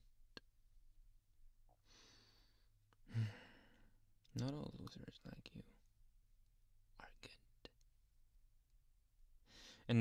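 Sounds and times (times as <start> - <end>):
man breathing: 1.7 - 4.1, 9.4 - 9.9.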